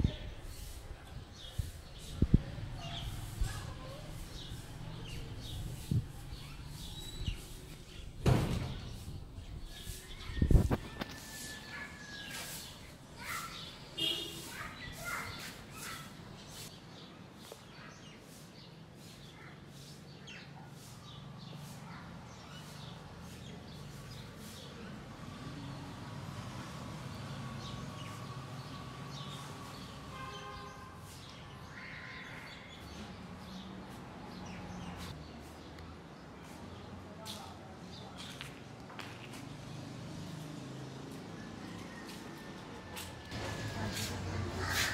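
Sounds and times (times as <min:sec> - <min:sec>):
birds chirping: 0:00.0 - 0:25.8
loud thumps: 0:08.2 - 0:09.1.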